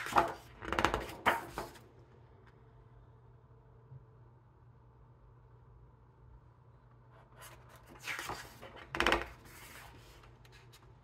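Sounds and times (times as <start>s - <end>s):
page slapping flat: 0.0s - 1.8s
paper page rustling: 7.3s - 11.0s.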